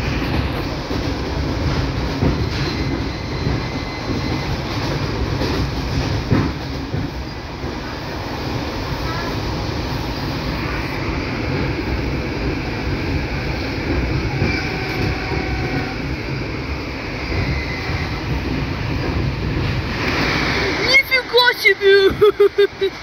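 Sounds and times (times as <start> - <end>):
train rumbling and rattling: 0.0 - 23.0
person laughing loudly: 22.0 - 23.0.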